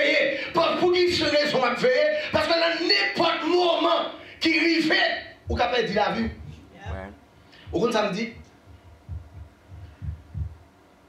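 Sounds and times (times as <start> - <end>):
soft low thumps of footfall: 8.7 - 10.6.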